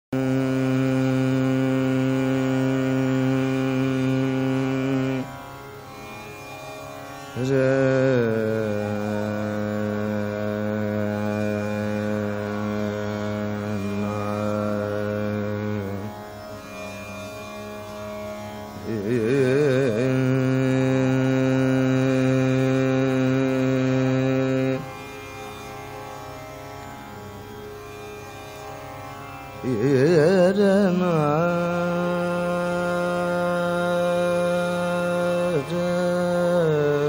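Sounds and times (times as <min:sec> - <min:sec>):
tanpura drone: 0:00.1 - 0:37.0
man singing long notes: 0:00.2 - 0:05.4, 0:07.4 - 0:16.2, 0:18.8 - 0:24.9, 0:29.6 - 0:37.0.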